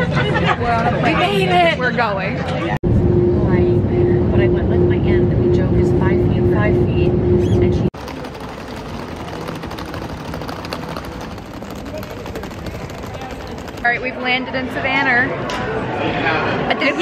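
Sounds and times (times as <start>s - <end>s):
airliner cabin engine rumble: 7.4s - 13.9s
airport terminal bustle: 7.4s - 17.0s.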